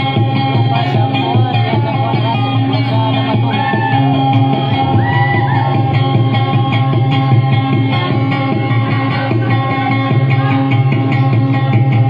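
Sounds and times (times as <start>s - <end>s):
amplified guitar plucking: 0.0s - 12.0s.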